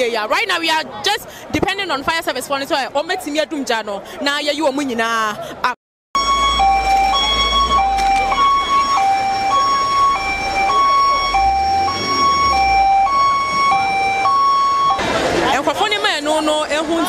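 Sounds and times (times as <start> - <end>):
fire engine two-tone siren: 6.2 - 15.6.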